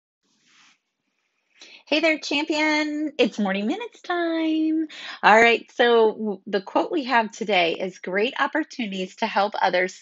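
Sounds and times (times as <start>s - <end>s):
woman speaking: 1.6s - 10.0s.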